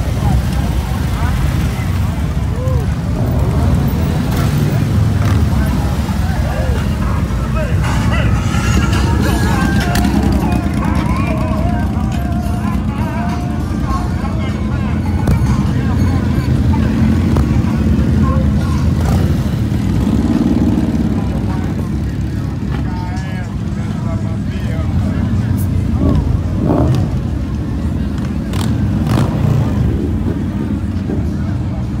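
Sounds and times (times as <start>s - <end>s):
motorcycle engines rumbling: 0.0s - 32.0s
people talking: 0.0s - 32.0s.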